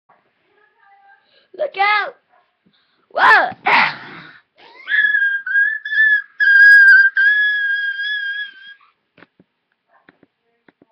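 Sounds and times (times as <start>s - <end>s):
long high-pitched scream: 4.7s - 9.0s.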